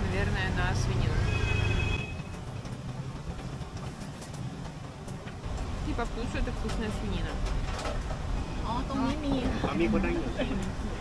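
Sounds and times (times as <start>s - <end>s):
passing vehicle rumble: 0.0s - 11.0s
steady road noise: 0.0s - 11.0s.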